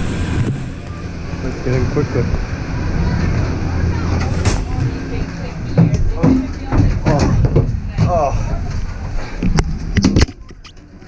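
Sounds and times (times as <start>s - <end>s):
gondola lift machinery rumble: 0.0s - 11.0s.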